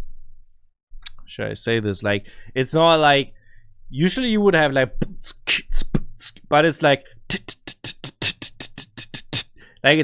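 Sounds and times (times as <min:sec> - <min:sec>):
person rapping: 0:07.3 - 0:09.5
fast hi-hat ticks: 0:07.3 - 0:09.6.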